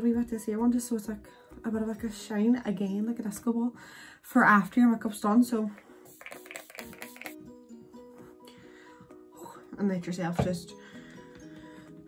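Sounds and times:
soft background music: 0:00.0 - 0:12.0
spray bottle spritzing: 0:06.1 - 0:07.4.

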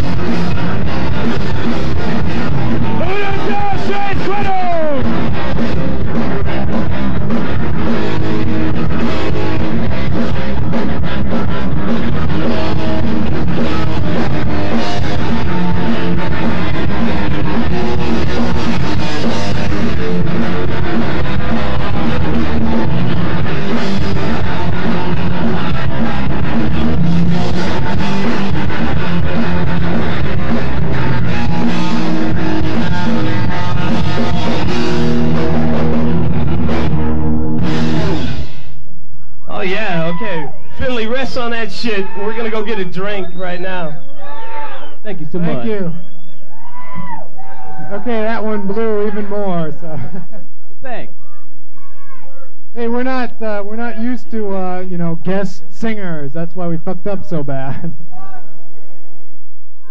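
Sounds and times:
live rock band playing: 0:00.0 - 0:38.9, 0:39.5 - 0:50.2.

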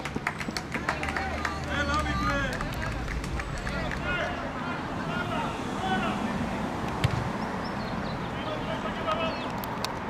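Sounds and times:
players shouting: 0:00.8 - 0:06.8.

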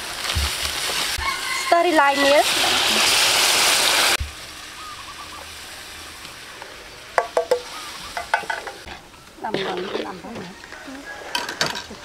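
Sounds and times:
short pitched calls: 0:04.7 - 0:05.5, 0:07.5 - 0:09.5.

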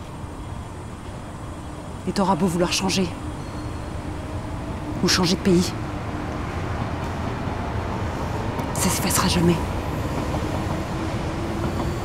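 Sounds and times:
low rumble of city ambience: 0:00.0 - 0:12.0.

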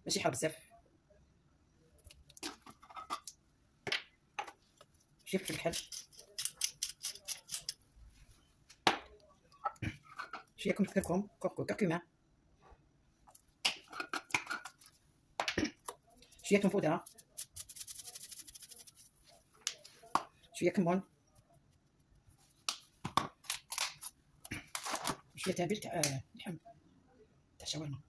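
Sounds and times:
spices shaken from jars: 0:16.3 - 0:19.2.

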